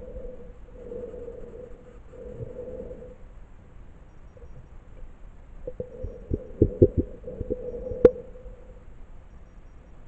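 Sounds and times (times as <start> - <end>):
steady hum: 0.0 - 10.0
muffled underwater thumps: 5.7 - 8.2.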